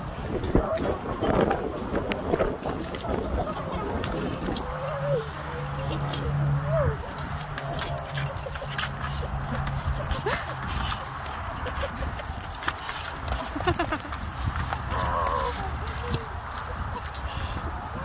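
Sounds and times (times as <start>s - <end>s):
wind rumble on microphone: 0.0s - 18.0s.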